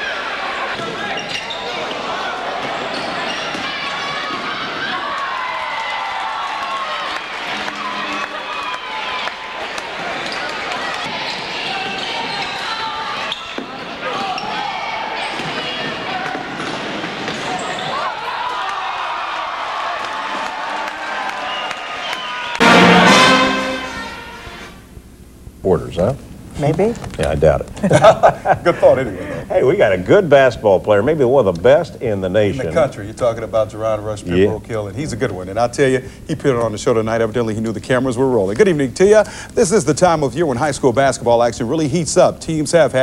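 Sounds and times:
voices of players and spectators: 0:00.0 - 0:24.4, 0:25.7 - 0:43.0.

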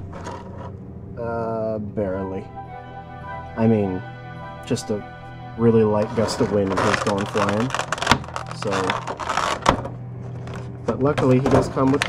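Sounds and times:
plastic packaging crackling: 0:06.1 - 0:12.0.

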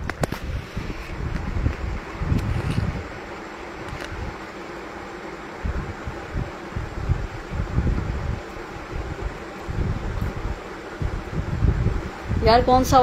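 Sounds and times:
wind buffeting microphone: 0:00.0 - 0:04.6, 0:05.5 - 0:13.0.

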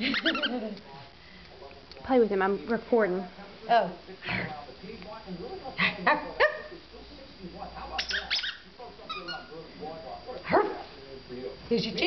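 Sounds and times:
puppy yipping: 0:08.0 - 0:09.5.

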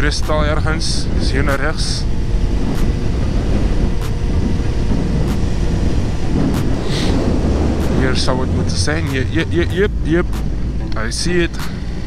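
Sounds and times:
motorcycle engine and road rumble: 0:00.0 - 0:12.0
wind buffeting microphone: 0:00.0 - 0:12.0.

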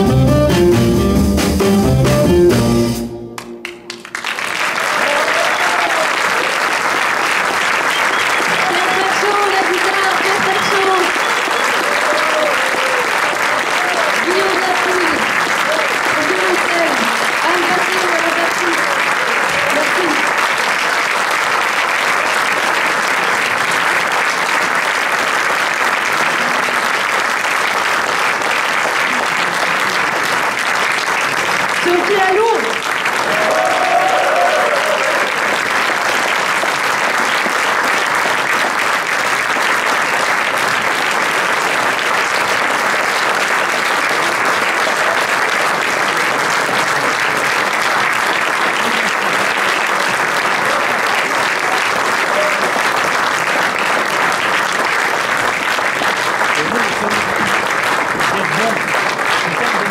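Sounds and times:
audience applauding: 0:03.4 - 0:59.9.

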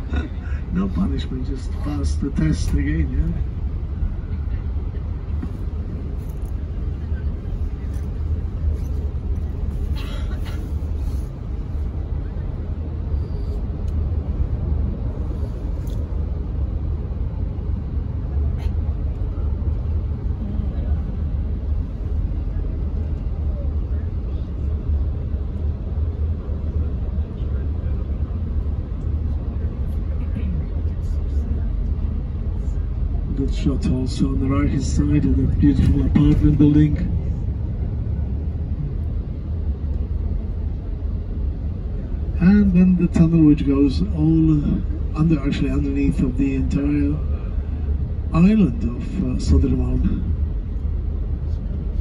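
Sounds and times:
road and engine rumble in cabin: 0:00.0 - 0:52.0.

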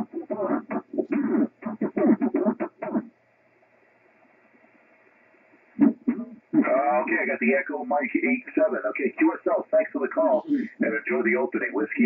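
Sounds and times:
receiver hiss: 0:00.0 - 0:12.0
choppy radio voice: 0:05.8 - 0:12.0.

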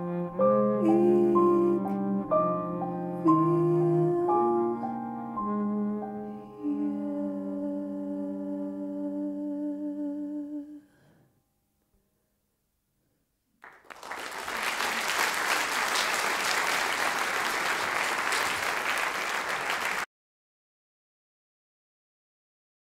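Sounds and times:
applause: 0:13.6 - 0:20.1.

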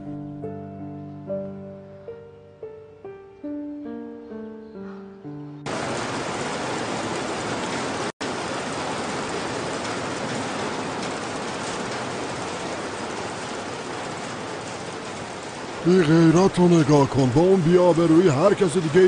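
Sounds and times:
piano music: 0:00.0 - 0:07.2.

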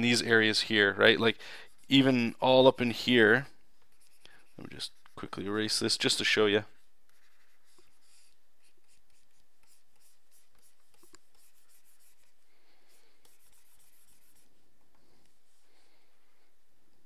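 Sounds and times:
stylus scratching on tablet: 0:00.2 - 0:14.6.

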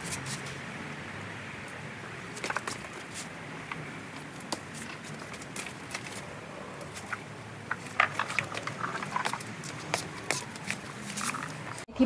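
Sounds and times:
leaves rustling: 0:00.0 - 0:11.9.

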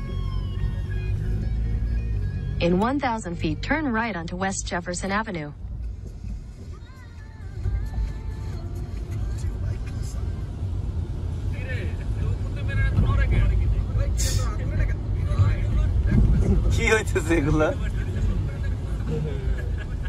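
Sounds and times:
car driving rumble from inside: 0:00.0 - 0:20.0.

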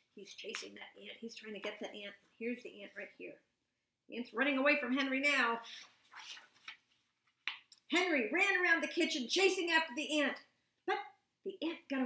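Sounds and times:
book page turning: 0:05.8 - 0:07.4.

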